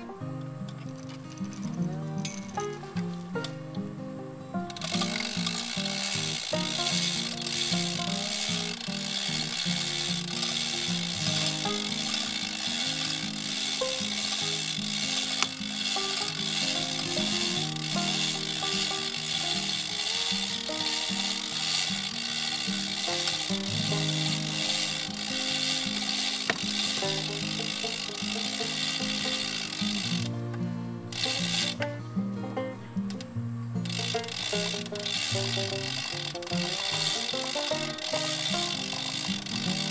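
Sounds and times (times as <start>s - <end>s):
background music: 0.0s - 39.9s
ratchet pawl clicking: 4.7s - 30.4s, 31.1s - 31.9s, 33.8s - 39.9s.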